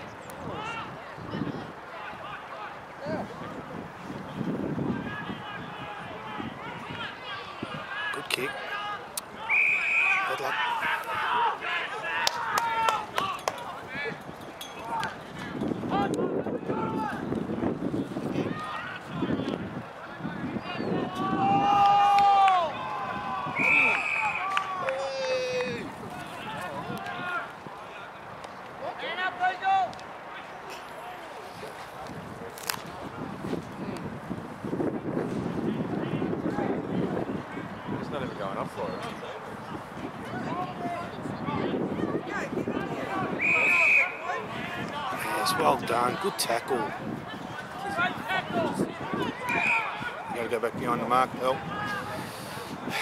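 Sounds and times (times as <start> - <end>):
players and spectators shouting: 0.4 - 3.7, 4.8 - 17.4, 18.3 - 31.5, 38.8 - 53.0
faint distant shouts: 4.9 - 15.2, 40.2 - 50.5
whistle blast: 9.4 - 10.3, 23.6 - 24.4, 43.3 - 44.3, 49.5 - 50.0.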